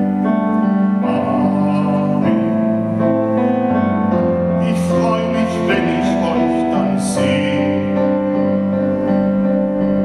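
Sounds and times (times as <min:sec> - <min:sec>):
digital piano playing sustained chords: 0:00.0 - 0:10.0.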